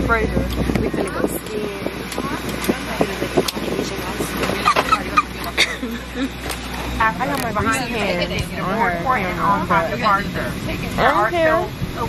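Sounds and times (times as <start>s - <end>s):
airliner cabin drone: 0.0s - 12.0s
people's voices: 0.0s - 12.0s.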